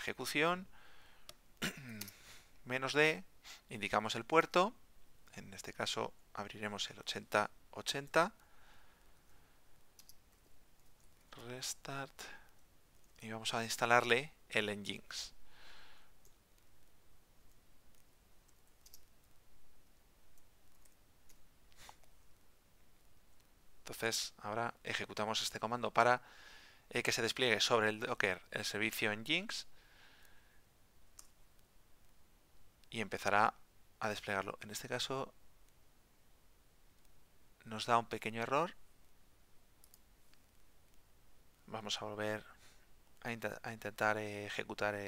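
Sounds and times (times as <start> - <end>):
faint keyboard keystrokes: 9.9 - 11.5, 17.4 - 22.4
faint keyboard click: 17.4 - 19.4.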